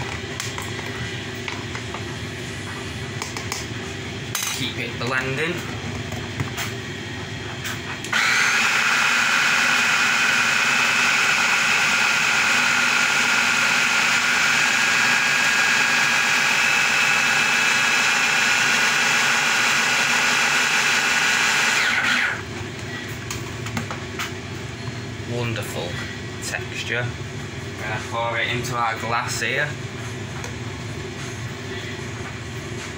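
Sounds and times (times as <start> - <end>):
hand blender motor whine: 8.1 - 22.5.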